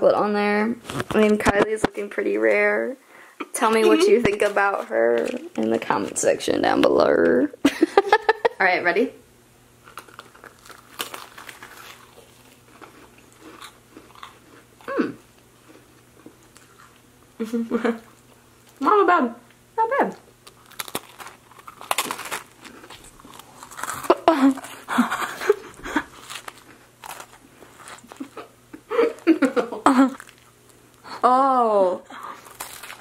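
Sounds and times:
crackers crunching while chewing: 9.8 - 17.1, 20.2 - 31.1, 32.2 - 33.0
chewing close to mouth: 9.9 - 14.9
person humming: 14.9 - 15.2.

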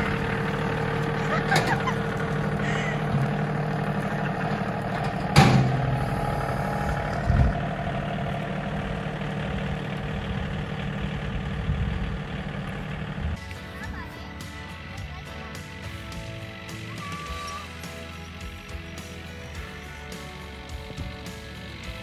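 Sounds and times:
tractor diesel engine running: 0.0 - 22.0.

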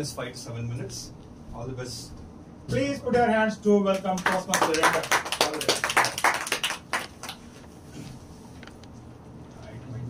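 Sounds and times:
small group applauding: 3.9 - 7.6.

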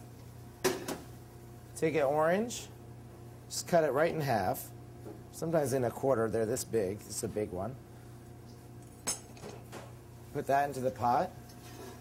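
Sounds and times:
low kitchen hum: 0.0 - 12.0.

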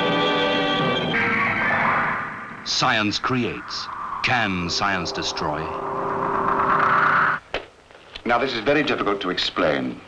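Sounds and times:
eerie drone: 0.0 - 7.4
hissing noise band: 1.1 - 7.5.

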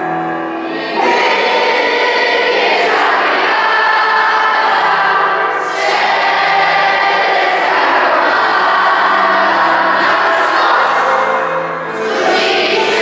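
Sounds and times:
children singing together: 0.0 - 13.0.

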